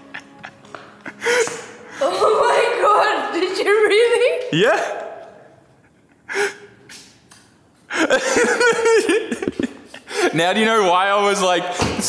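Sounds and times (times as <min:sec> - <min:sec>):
woman gasping: 0:01.1 - 0:02.2.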